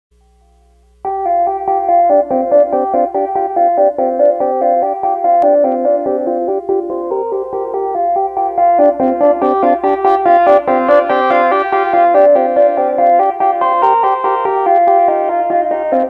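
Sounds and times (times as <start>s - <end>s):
synthesizer fast sequenced notes: 1.0s - 16.0s.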